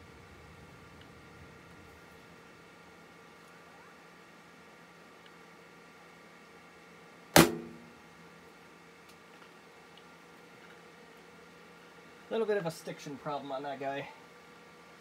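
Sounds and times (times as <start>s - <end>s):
sharp knock on laptop: 7.4s - 7.8s.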